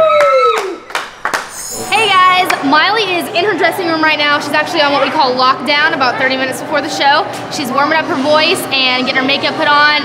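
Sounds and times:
sharp hand claps: 0:00.1 - 0:01.6.

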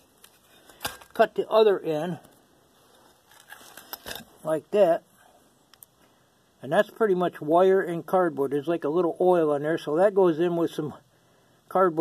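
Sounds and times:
faint clicks and rustles: 0:02.2 - 0:04.4.

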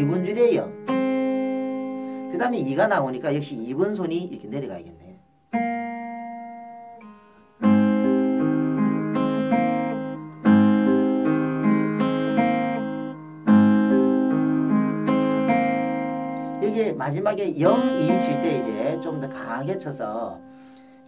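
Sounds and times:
fingerpicked acoustic guitar: 0:00.0 - 0:21.0.

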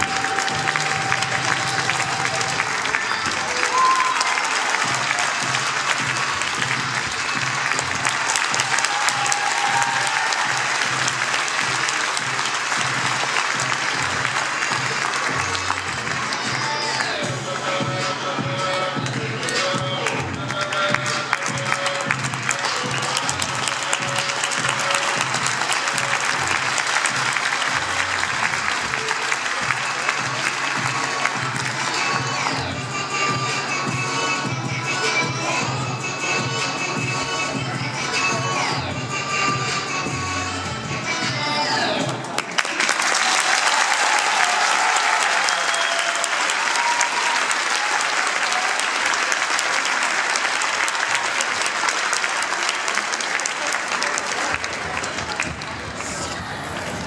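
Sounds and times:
audience applauding: 0:00.0 - 0:17.2, 0:19.5 - 0:32.7, 0:42.1 - 0:56.8
music with steady beat: 0:00.0 - 0:42.4.

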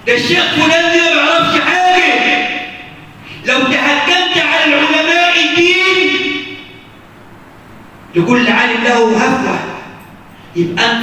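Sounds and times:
man speaking through loudspeakers: 0:00.0 - 0:06.9, 0:08.1 - 0:11.0
low room noise: 0:00.0 - 0:11.0.

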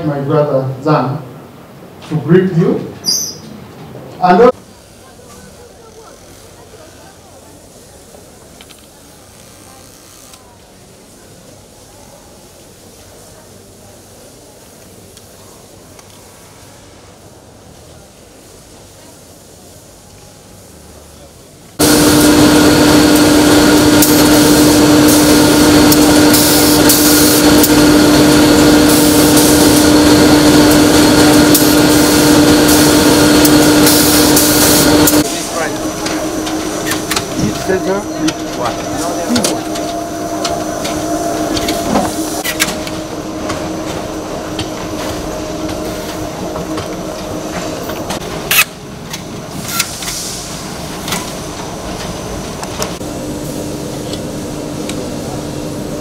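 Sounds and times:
machinery droning hum: 0:21.8 - 0:56.0.

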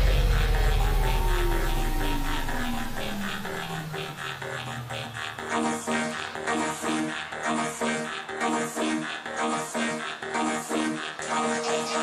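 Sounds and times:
live electronic dance music: 0:00.0 - 0:12.0.

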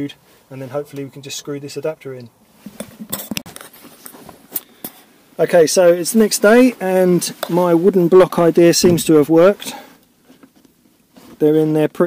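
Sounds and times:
rustling: 0:00.2 - 0:11.9.

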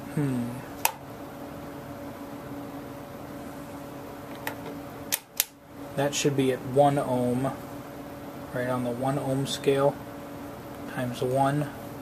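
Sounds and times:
steady low hum: 0:00.0 - 0:12.0
rotary switch clicks: 0:04.3 - 0:05.6.

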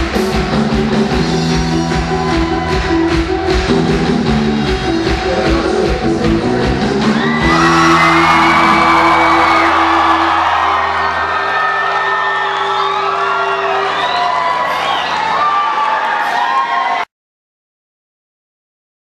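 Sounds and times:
audience whooping and cheering: 0:00.0 - 0:05.9, 0:06.6 - 0:17.1
rock band playing: 0:00.0 - 0:16.5.

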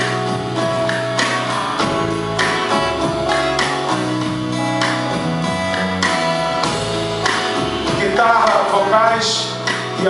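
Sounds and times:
electric guitar: 0:00.0 - 0:10.0
steady drum beat: 0:00.0 - 0:10.0
sustained keyboard chords: 0:00.0 - 0:10.0.

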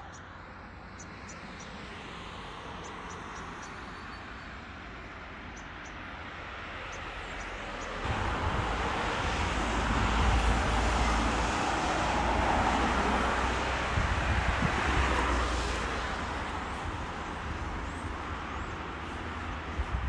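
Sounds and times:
passing road traffic rumble: 0:00.0 - 0:20.0.

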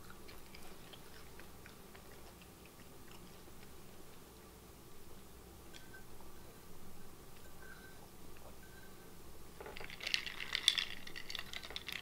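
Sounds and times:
ice cubes clinking in a jar: 0:09.6 - 0:12.0.

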